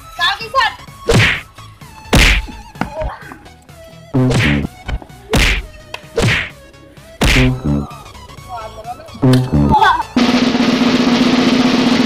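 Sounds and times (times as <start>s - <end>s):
punch hits: 1.1s - 1.5s, 2.1s - 2.6s, 4.2s - 4.7s, 5.4s - 6.6s, 7.2s - 7.8s.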